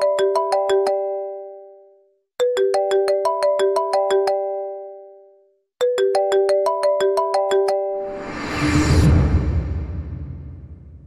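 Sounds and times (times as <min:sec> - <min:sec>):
smartphone ringtone chiming: 0:00.0 - 0:08.1.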